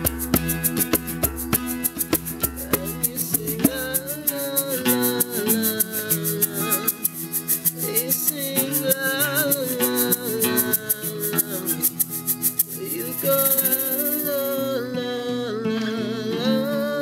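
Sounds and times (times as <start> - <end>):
hand drum: 0.0 - 14.6
rattle shaking: 0.0 - 14.8
strummed acoustic guitars: 0.0 - 17.0
wordless singing: 2.4 - 17.0.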